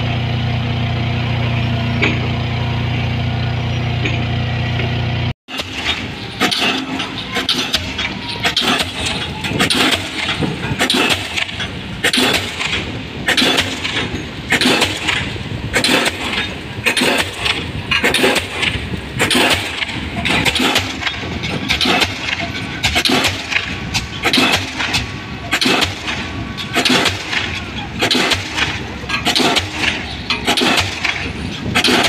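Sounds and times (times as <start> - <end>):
crane engine running: 0.0 - 32.0
pile-driving hammer blows: 1.1 - 32.0.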